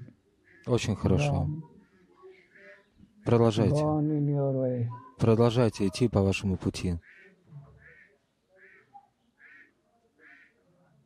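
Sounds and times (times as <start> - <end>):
faint bird calls: 0.4 - 3.5, 7.0 - 10.6.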